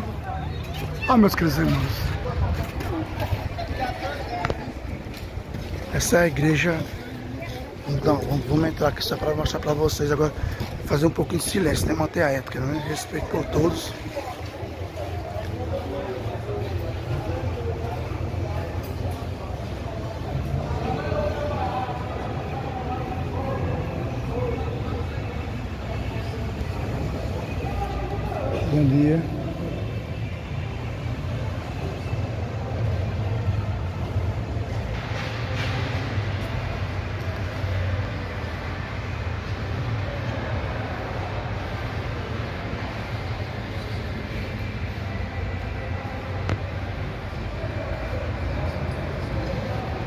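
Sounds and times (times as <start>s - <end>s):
distant voices murmuring: 0.0s - 50.0s.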